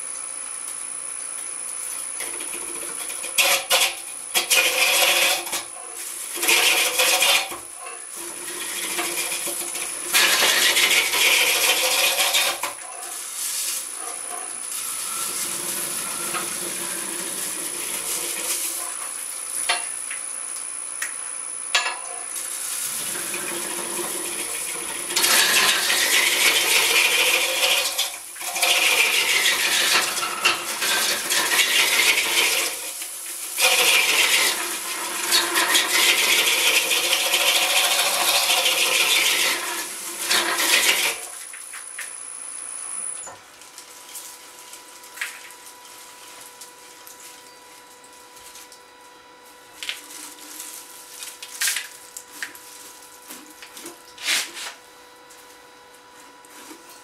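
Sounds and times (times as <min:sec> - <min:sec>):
tool scraping wood on lathe: 0:02.2 - 0:19.0, 0:22.9 - 0:32.9, 0:33.6 - 0:41.3.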